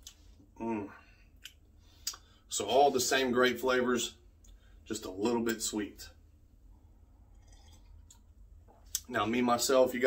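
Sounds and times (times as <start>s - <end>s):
low steady hum: 0.0s - 10.0s
sipping coffee from a cup: 7.3s - 9.1s.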